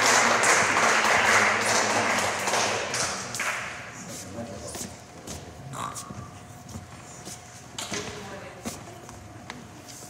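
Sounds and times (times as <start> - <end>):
audience applause: 0.0 - 3.7.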